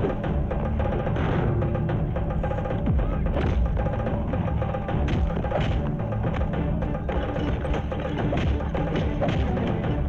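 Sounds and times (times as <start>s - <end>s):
action film score with heavy drums: 0.0s - 10.0s.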